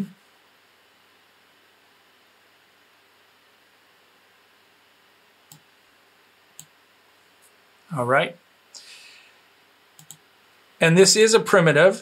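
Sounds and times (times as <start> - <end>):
quiet steady hiss: 0.0 - 12.0
computer mouse clicks: 5.5 - 5.7, 6.6 - 6.8, 9.9 - 10.2.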